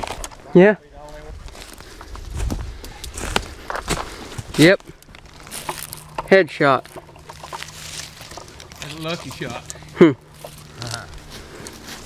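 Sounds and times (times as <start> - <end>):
footsteps through dry leaves: 1.3 - 4.6, 5.2 - 6.2, 6.8 - 12.0.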